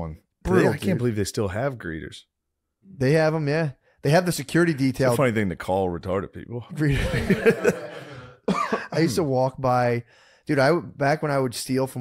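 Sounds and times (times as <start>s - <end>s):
man laughing: 6.8s - 9.3s.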